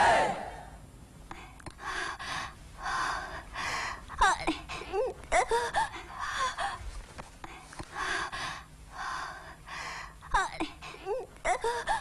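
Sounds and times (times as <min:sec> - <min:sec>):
crowd shouting: 0:00.0 - 0:00.7
woman gasping: 0:01.3 - 0:06.8, 0:07.5 - 0:12.0
woman breathing heavily: 0:01.3 - 0:12.0.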